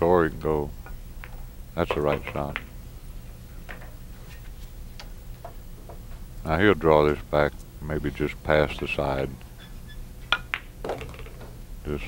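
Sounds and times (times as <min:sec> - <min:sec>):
pool balls clacking: 0:01.2 - 0:02.8, 0:10.3 - 0:11.6.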